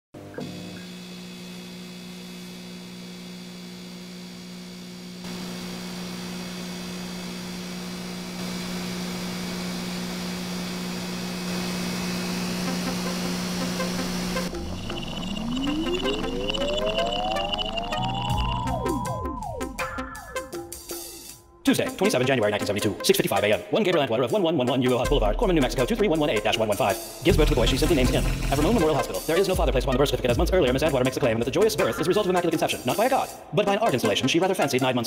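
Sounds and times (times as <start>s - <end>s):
electrical hum with high whine: 0.2s - 19.2s
static hiss: 5.2s - 18.2s
rising electronic glide: 12.6s - 20.5s.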